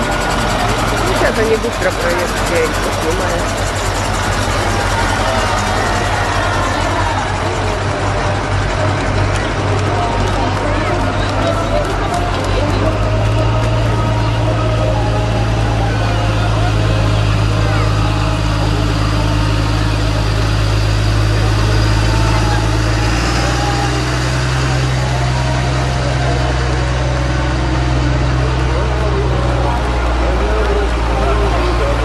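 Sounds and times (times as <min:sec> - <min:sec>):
truck diesel engines driving past: 0:00.0 - 0:32.0.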